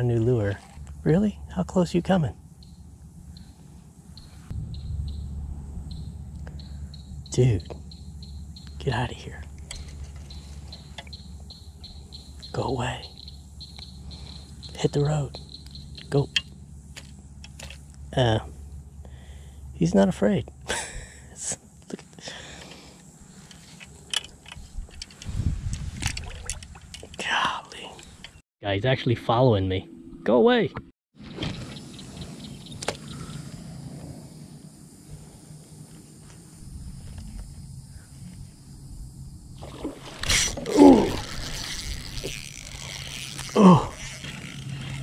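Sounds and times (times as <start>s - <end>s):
low rumble: 0.6s - 10.6s
water splashing and dripping: 26.0s - 27.2s.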